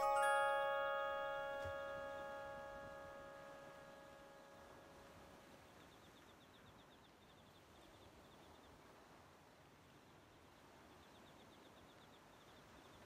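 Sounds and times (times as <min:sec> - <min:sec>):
music box chord ringing: 0:00.0 - 0:05.4.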